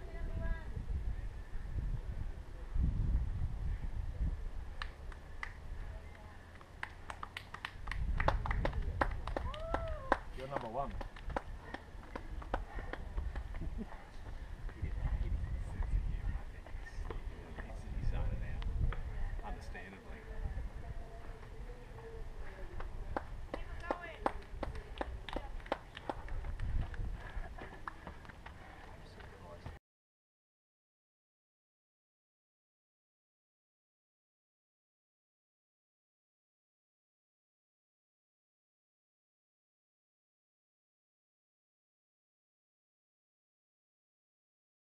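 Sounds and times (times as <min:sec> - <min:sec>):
running footsteps on dirt trail: 0:08.3 - 0:17.9, 0:21.0 - 0:29.8.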